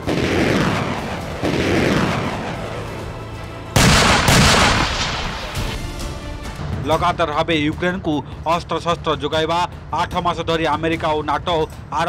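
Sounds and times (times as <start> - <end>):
heavy weapon blasts: 3.8 - 5.8.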